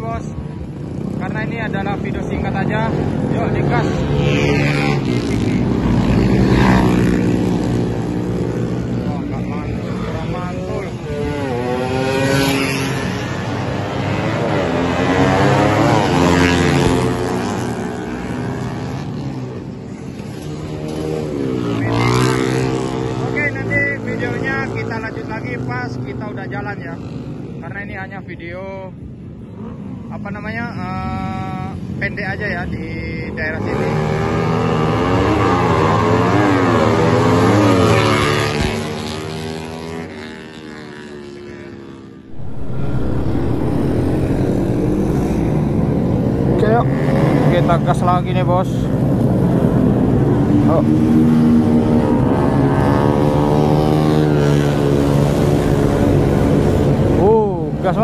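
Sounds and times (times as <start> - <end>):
motorcycles speeding past: 0.0 - 26.3, 33.6 - 58.0.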